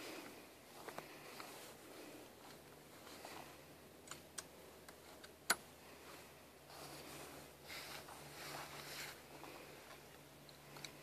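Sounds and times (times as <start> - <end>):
soft rustling: 0.0 - 3.8, 4.6 - 11.0.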